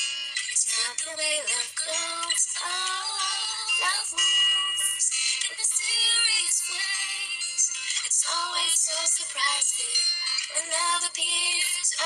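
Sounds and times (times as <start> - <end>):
woman singing a ballad: 0.6 - 12.0.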